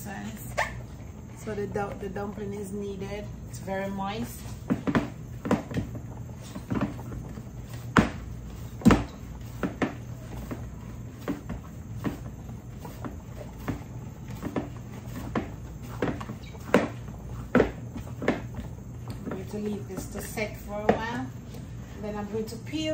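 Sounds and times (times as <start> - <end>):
steady low hum: 0.0 - 22.9
dough thumping in plastic bowl: 4.7 - 6.0, 7.9 - 10.6, 13.0 - 19.4.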